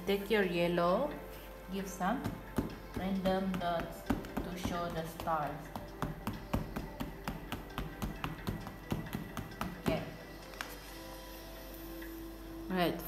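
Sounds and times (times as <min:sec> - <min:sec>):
soft background music: 0:00.0 - 0:13.0
oil pastel tapping on paper: 0:02.2 - 0:10.8.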